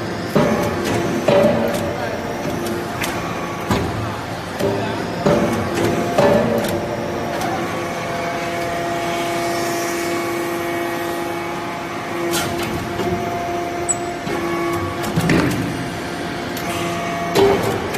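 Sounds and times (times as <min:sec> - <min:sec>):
hydraulic pump humming: 0:10.1 - 0:17.5.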